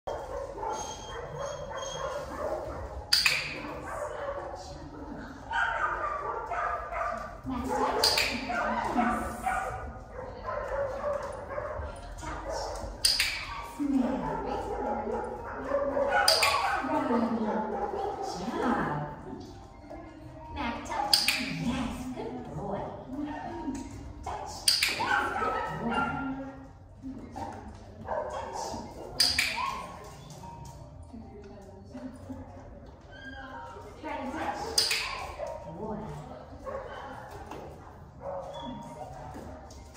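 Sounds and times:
dog barking with echo: 5.5s - 18.4s, 24.8s - 26.4s.

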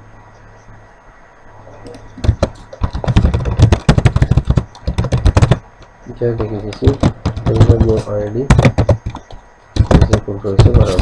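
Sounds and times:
computer keyboard typing clicks: 1.9s - 5.6s, 6.4s - 11.0s.

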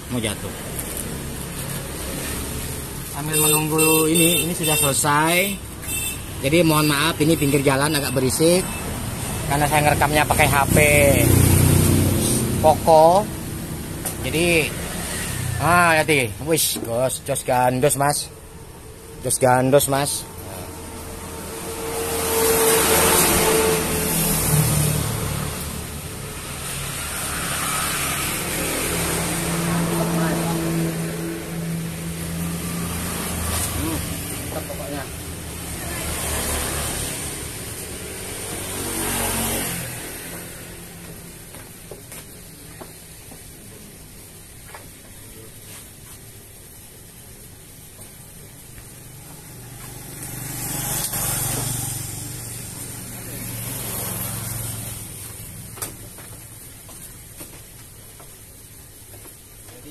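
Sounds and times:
motorcycles passing: 0.0s - 42.9s, 48.6s - 57.1s
road traffic: 0.0s - 59.9s.

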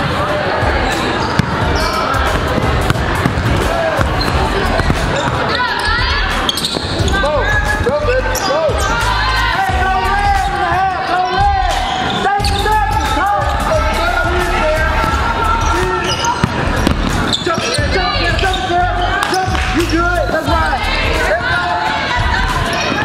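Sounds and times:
players' voices in a hall: 0.0s - 23.0s
basketball bouncing: 1.2s - 8.0s, 16.0s - 18.0s
sneaker squeaks: 1.2s - 9.0s, 11.8s - 12.7s, 15.6s - 20.1s.

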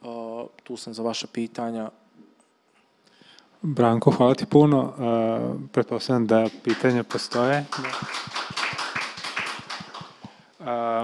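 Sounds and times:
people clapping: 6.3s - 10.4s.

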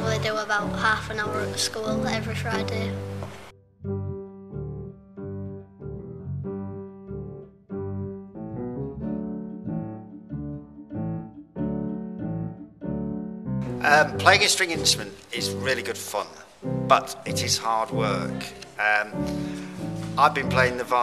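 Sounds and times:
piano music: 0.0s - 21.0s.

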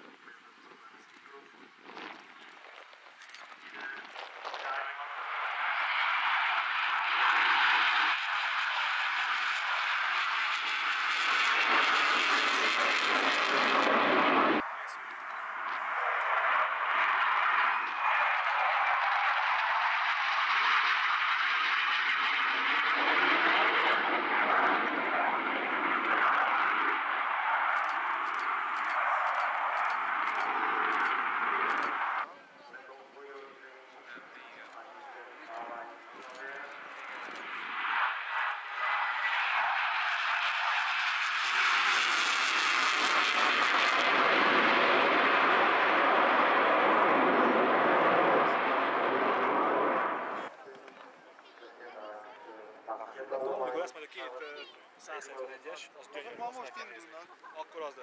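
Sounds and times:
jet engine roar: 0.0s - 32.3s, 33.1s - 54.1s.

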